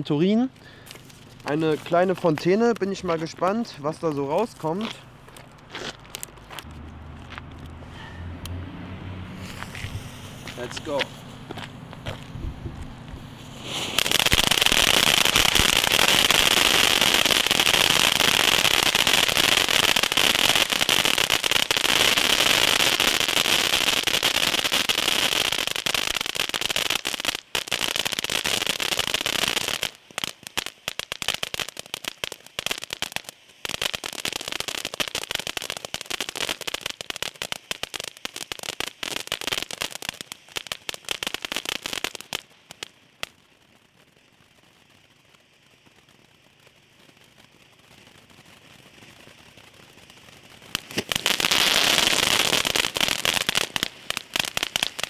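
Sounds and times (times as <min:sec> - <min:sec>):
rapid irregular crackling: 0:00.0 - 0:07.8, 0:09.5 - 0:12.4
firework fountain hissing: 0:09.3 - 0:55.0.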